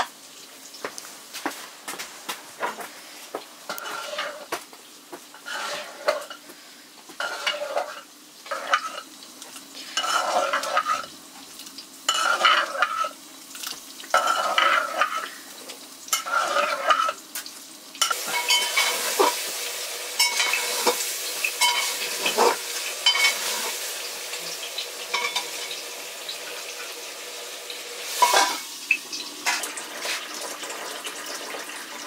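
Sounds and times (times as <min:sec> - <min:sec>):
frying sizzle: 0:00.0 - 0:32.0
metal ladle scraping a pot: 0:03.7 - 0:04.5, 0:05.4 - 0:06.4, 0:07.2 - 0:09.0, 0:09.8 - 0:11.1, 0:12.1 - 0:13.2, 0:14.1 - 0:15.3, 0:16.1 - 0:17.2
metal pots and utensils clinking: 0:03.7 - 0:04.5, 0:05.3 - 0:06.4, 0:07.2 - 0:11.2, 0:12.1 - 0:15.4, 0:16.1 - 0:19.5, 0:20.2 - 0:23.8, 0:24.7 - 0:25.8, 0:28.1 - 0:30.2.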